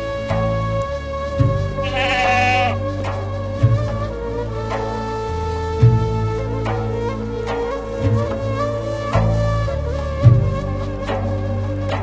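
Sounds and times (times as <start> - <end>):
background music: 0.0 - 12.0
sheep bleating: 1.8 - 2.8.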